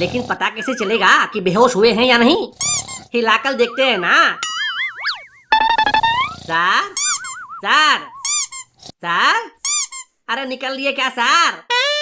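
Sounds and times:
cartoon boing tone: 3.5s - 6.4s
short buzzy tone: 4.7s - 6.4s.

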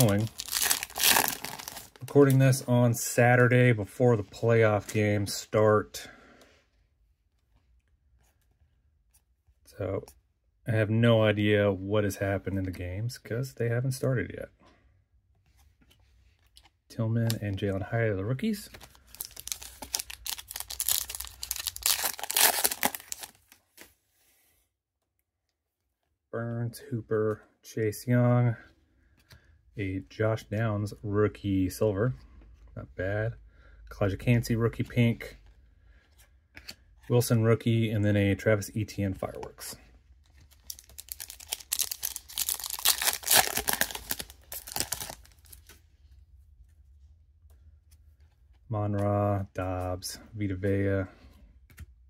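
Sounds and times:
foil wrapper tearing and crinkling: 0.0s - 2.0s, 19.1s - 23.6s, 40.6s - 45.6s.

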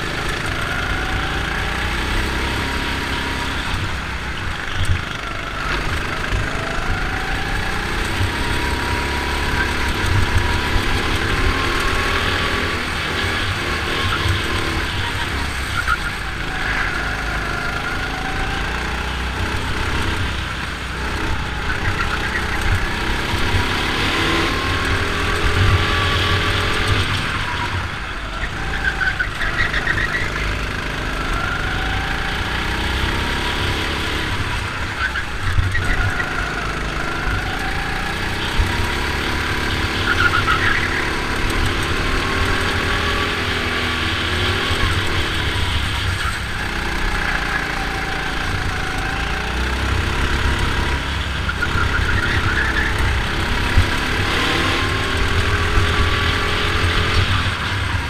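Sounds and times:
go-kart engine revving: 0.0s - 58.0s.

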